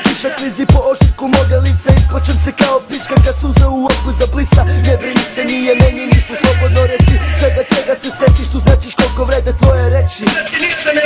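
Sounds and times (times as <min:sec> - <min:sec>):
rapping over a beat: 0:00.0 - 0:11.0
kick drums: 0:00.7 - 0:01.3, 0:01.9 - 0:02.1, 0:03.2 - 0:03.8, 0:05.8 - 0:06.4, 0:07.0 - 0:07.2, 0:08.3 - 0:08.9
deep bass notes: 0:01.4 - 0:02.6, 0:03.2 - 0:05.0, 0:05.8 - 0:07.7, 0:08.3 - 0:10.1.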